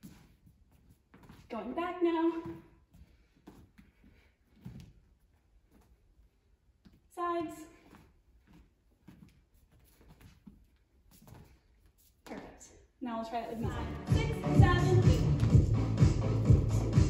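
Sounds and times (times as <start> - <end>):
soft dance steps on floor: 0.0 - 17.0.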